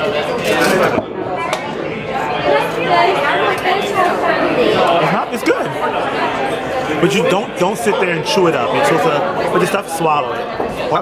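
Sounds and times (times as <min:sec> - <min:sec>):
people chatting in a bar: 0:00.0 - 0:11.0.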